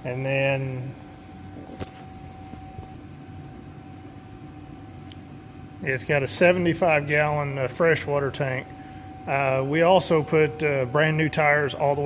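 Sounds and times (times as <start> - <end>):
faint steady whine: 0.0 - 12.0
low hum: 0.8 - 12.0.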